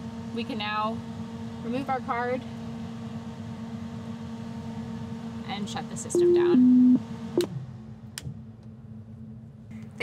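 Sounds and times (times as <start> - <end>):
faint low hum: 5.9 - 7.6.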